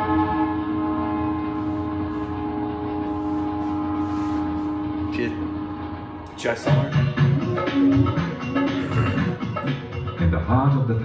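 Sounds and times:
train horn long note: 0.0s - 7.7s.

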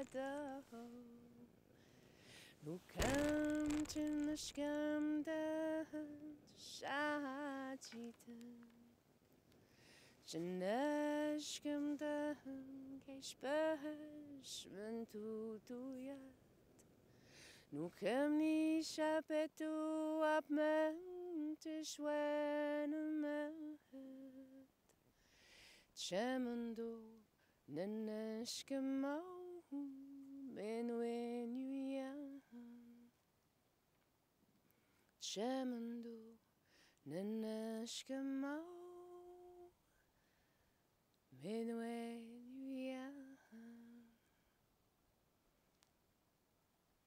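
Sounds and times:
woman singing held notes: 0.0s - 1.5s
woman singing notes: 0.0s - 1.5s, 2.6s - 8.9s.

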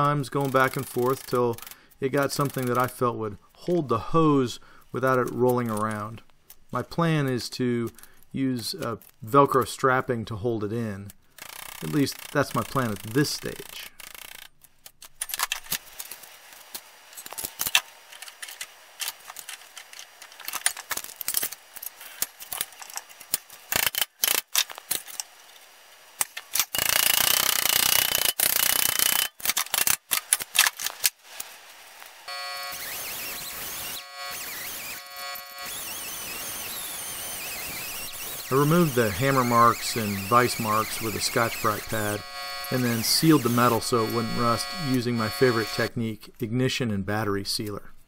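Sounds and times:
air tool whining: 32.3s - 45.9s.

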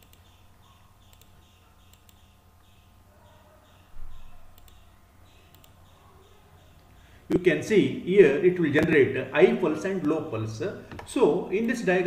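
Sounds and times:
computer mouse clicks: 0.0s - 0.4s, 1.0s - 2.8s, 3.7s - 6.9s
low background hum: 0.0s - 12.0s.

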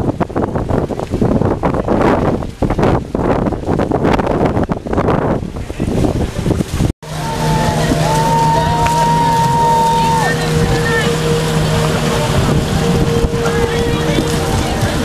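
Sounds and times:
outboard motor running: 0.0s - 15.0s
water splashing: 0.0s - 15.0s
wind buffeting microphone: 0.0s - 15.0s
voices: 7.1s - 15.0s.

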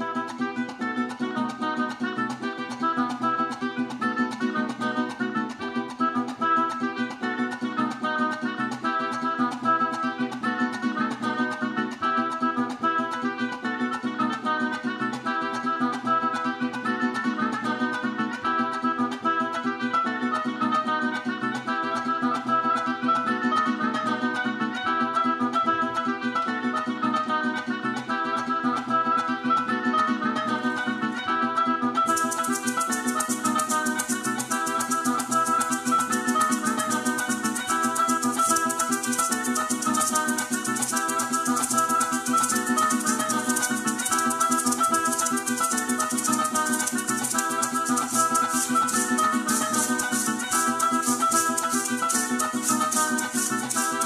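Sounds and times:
plucked strings: 0.0s - 54.0s
maracas shaking: 0.2s - 13.3s, 32.0s - 54.0s
oboe melody: 29.5s - 54.0s.

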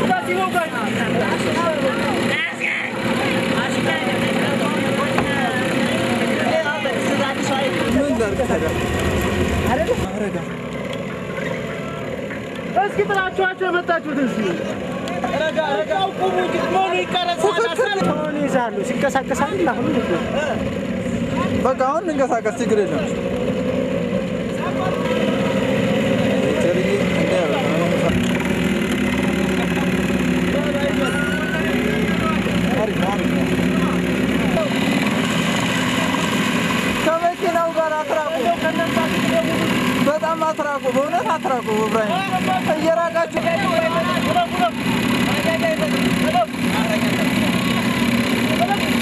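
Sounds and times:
people's voices: 0.0s - 49.0s
trail motorcycle engines running: 0.0s - 49.0s
people calling out: 28.5s - 32.8s.

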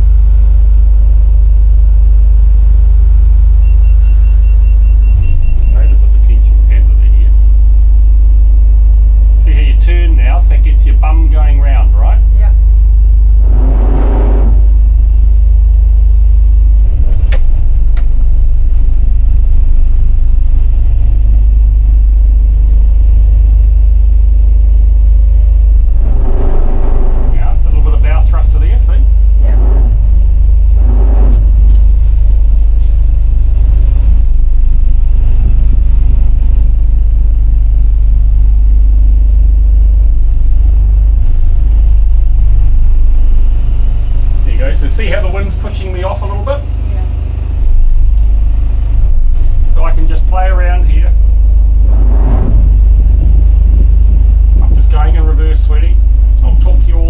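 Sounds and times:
diesel engine rumbling: 0.0s - 57.0s
indistinct voices: 26.0s - 31.9s, 49.7s - 56.9s.

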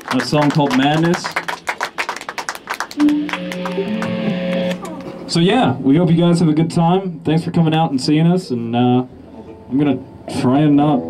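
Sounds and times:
electric guitar notes: 2.8s - 5.3s.

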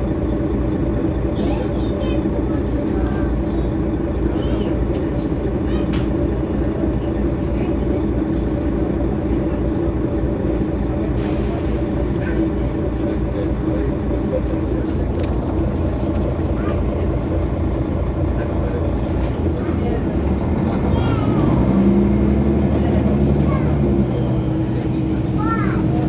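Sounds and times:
bus engine droning: 0.0s - 26.0s.

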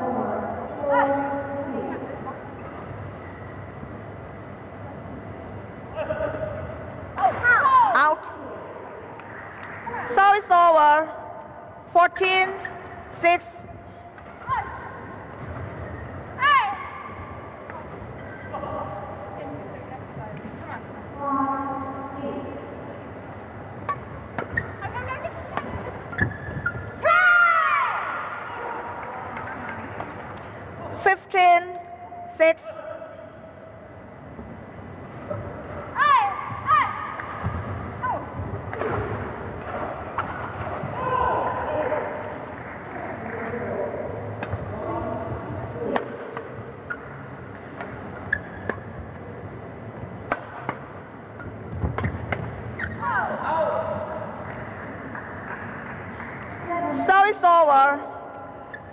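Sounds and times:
shoes squeaking on court: 23.8s - 27.0s, 46.8s - 49.1s, 50.5s - 53.0s, 58.6s - 58.9s
racket striking shuttlecock: 50.3s - 50.9s.

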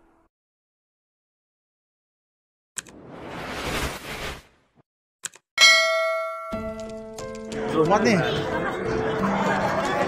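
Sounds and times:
bright bell ding: 5.6s - 7.0s.

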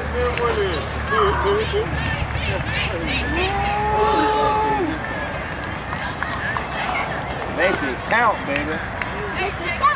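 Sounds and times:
low outdoor rumble: 0.0s - 9.9s.

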